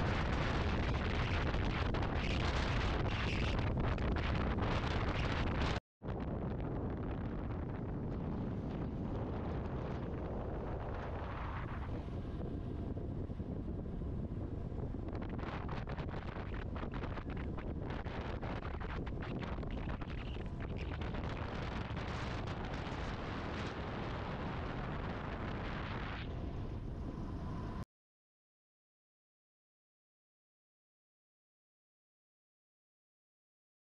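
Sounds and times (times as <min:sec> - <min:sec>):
wind buffeting microphone: 0:00.0 - 0:27.8.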